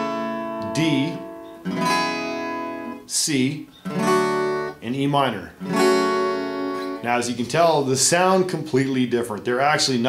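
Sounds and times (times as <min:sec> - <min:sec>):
acoustic guitar chord strummed: 0:00.0 - 0:09.3.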